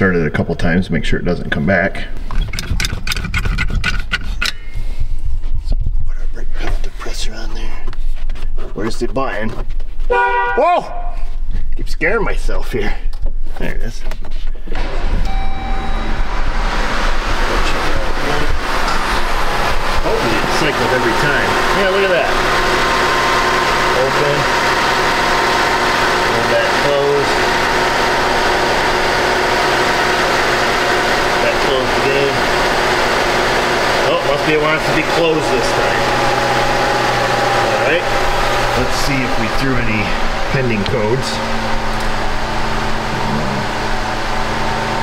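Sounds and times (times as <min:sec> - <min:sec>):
car engine starting and idling: 0:14.6 - 0:45.0.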